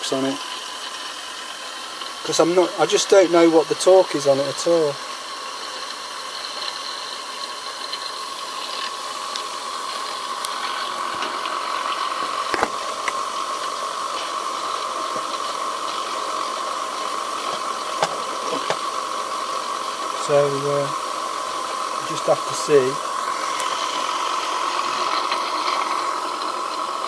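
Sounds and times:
steam turbine whirring hiss: 0.0 - 27.0.

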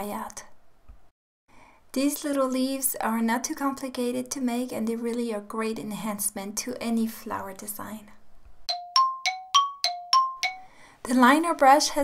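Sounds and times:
bell-like chime dings: 8.7 - 10.8.

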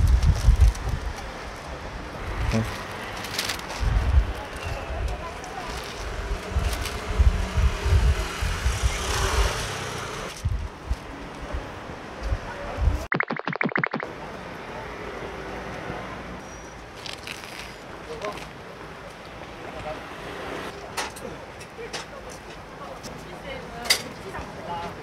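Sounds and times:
wind buffeting microphone: 0.0 - 1.4, 3.8 - 5.2, 6.1 - 9.6, 10.3 - 13.1
quick even pulses: 13.1 - 14.1.

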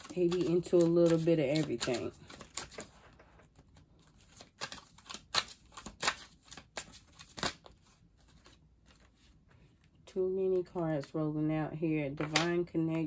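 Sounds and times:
cards being shuffled: 0.0 - 9.9, 12.2 - 12.6.

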